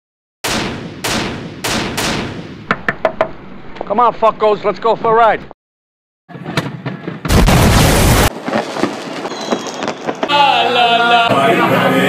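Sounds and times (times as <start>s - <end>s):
gunshots with echoing tail: 0.4s - 3.4s.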